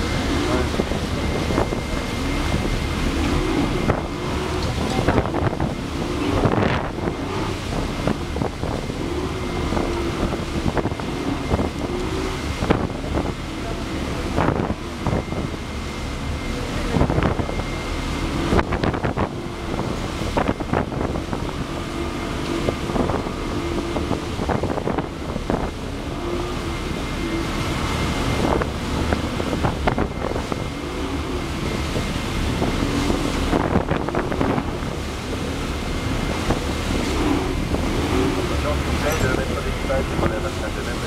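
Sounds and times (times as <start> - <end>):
churning water and spray: 0.0 - 41.0
motorboat engines droning: 0.0 - 41.0
water slapping: 0.0 - 41.0
wind buffeting microphone: 0.0 - 41.0.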